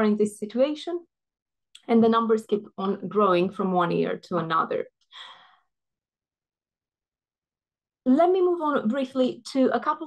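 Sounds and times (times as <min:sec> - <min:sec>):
woman breathing: 0:05.0 - 0:05.8.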